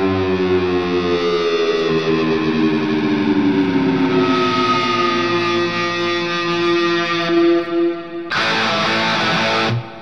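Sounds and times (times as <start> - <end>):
distorted electric guitar: 4.0 - 10.0.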